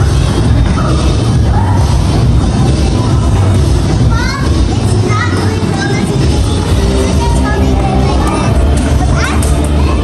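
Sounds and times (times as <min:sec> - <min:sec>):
loud music with heavy bass: 0:00.0 - 0:10.0
child's voice: 0:02.7 - 0:10.0.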